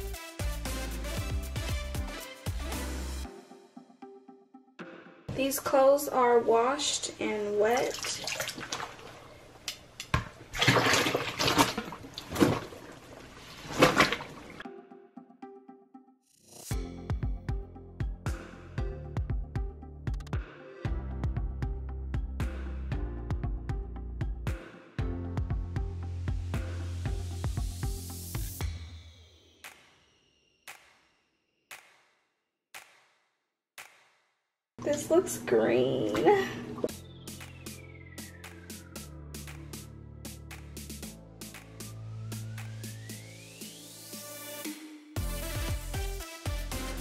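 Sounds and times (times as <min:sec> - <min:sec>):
water splashing and sloshing: 0:07.4 - 0:14.6.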